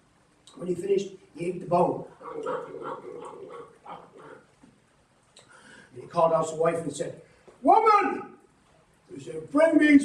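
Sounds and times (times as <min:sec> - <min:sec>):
man making gnawing mouth noises: 0:02.2 - 0:04.6.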